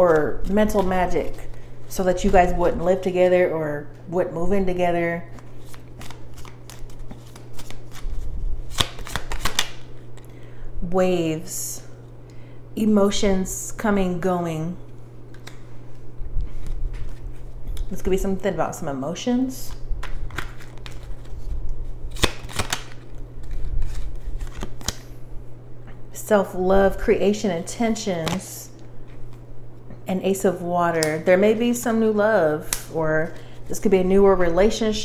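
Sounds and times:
steady low hum: 0:00.0 - 0:35.0
cards being shuffled: 0:05.3 - 0:10.0, 0:19.7 - 0:25.1.

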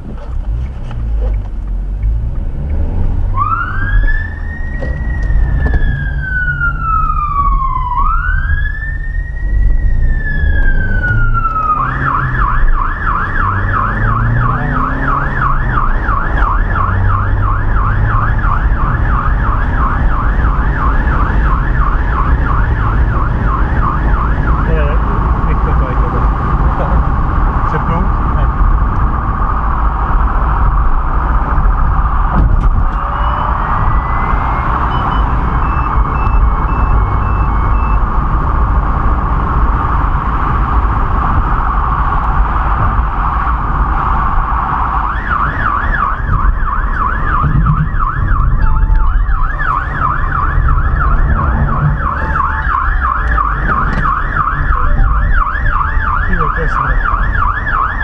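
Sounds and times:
road noise: 0:00.0 - 0:58.0
vehicle engine rumble: 0:00.0 - 0:58.0
emergency siren yelping: 0:03.1 - 0:27.5, 0:29.2 - 0:58.0.

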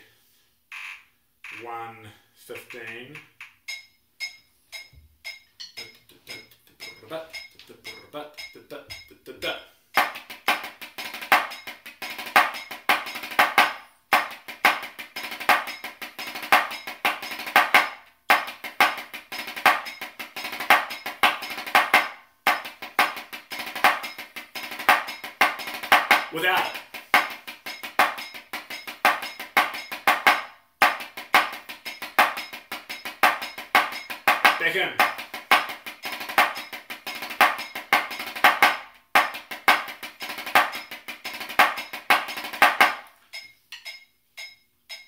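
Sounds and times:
drumsticks on practice pad: 0:02.5 - 0:09.2, 0:10.0 - 0:45.0
metronome clicking: 0:02.6 - 0:09.2, 0:14.7 - 0:38.7.

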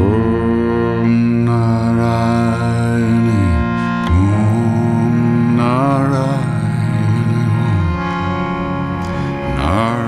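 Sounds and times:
man chanting a long note: 0:00.0 - 0:08.8, 0:09.4 - 0:10.0.

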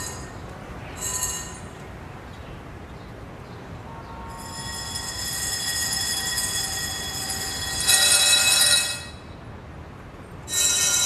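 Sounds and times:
high metallic squeal: 0:01.0 - 0:01.7, 0:04.2 - 0:09.3, 0:10.5 - 0:11.0.

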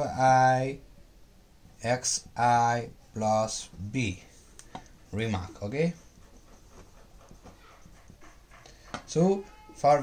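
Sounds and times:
pen writing on paper: 0:05.2 - 0:09.0.

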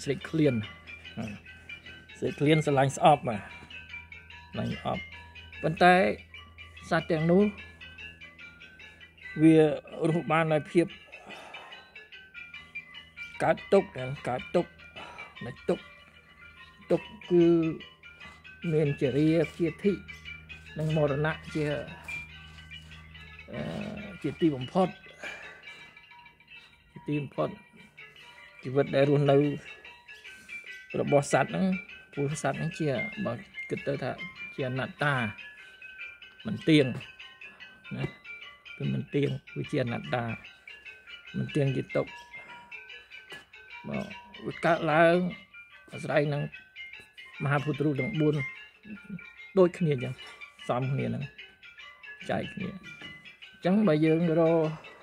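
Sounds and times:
man speaking: 0:00.0 - 0:01.4, 0:02.2 - 0:03.5, 0:04.6 - 0:05.0, 0:06.8 - 0:07.6, 0:09.4 - 0:11.0, 0:13.4 - 0:14.7, 0:16.9 - 0:17.8, 0:18.6 - 0:20.0, 0:20.8 - 0:22.1, 0:23.5 - 0:25.0, 0:27.0 - 0:27.6, 0:28.6 - 0:29.6, 0:31.0 - 0:35.3, 0:41.4 - 0:42.1, 0:43.9 - 0:45.4, 0:53.7 - 0:54.8
sustained chime-like tones: 0:00.0 - 0:55.0
person talking: 0:02.2 - 0:03.5, 0:09.4 - 0:11.0, 0:13.4 - 0:15.8, 0:16.9 - 0:17.8, 0:18.6 - 0:20.0, 0:20.8 - 0:22.1, 0:23.5 - 0:25.0, 0:27.0 - 0:27.6, 0:28.6 - 0:29.7, 0:31.0 - 0:35.4, 0:52.2 - 0:52.8, 0:53.7 - 0:54.8
soft background music: 0:16.8 - 0:26.0.

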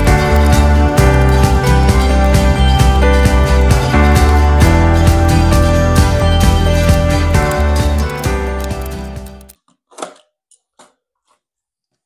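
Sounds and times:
background music: 0:00.0 - 0:09.6
plastic sheet clicking and clacking: 0:06.8 - 0:12.0.

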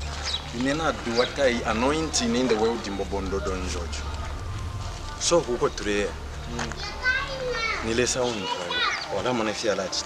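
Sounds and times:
low steady rumble: 0:01.3 - 0:08.8
children chattering and calling: 0:01.9 - 0:09.3.

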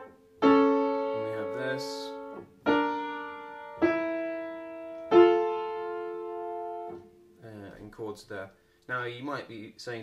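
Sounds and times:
piano chords ringing: 0:00.0 - 0:07.8.

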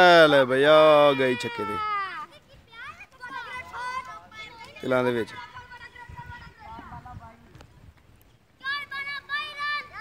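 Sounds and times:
distant children shouting: 0:00.6 - 0:06.9, 0:08.6 - 0:10.0.

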